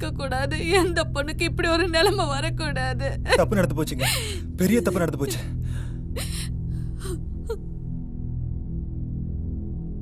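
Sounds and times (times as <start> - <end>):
low background music drone: 0.0 - 10.0
woman sobbing: 0.3 - 7.6.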